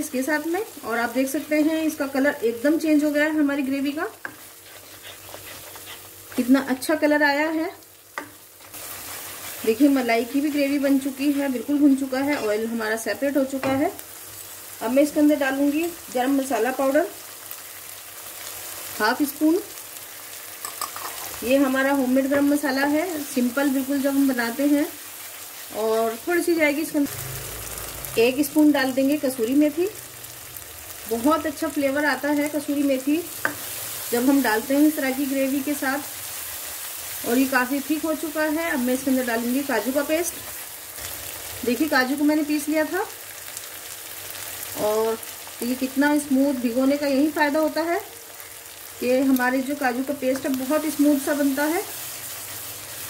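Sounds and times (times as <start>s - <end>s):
woman speaking: 0.0s - 4.2s, 6.4s - 7.8s, 9.6s - 14.0s, 14.8s - 17.2s, 19.0s - 19.7s, 21.4s - 25.0s, 25.7s - 27.1s, 28.2s - 30.0s, 34.2s - 36.1s, 37.2s - 40.4s, 44.8s - 48.1s, 49.0s - 51.9s
gravy sizzling in a pan: 0.0s - 53.0s.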